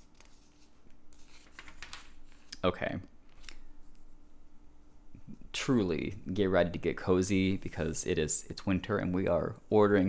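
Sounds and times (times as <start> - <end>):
hands rustling paper pages: 0.0 - 2.6.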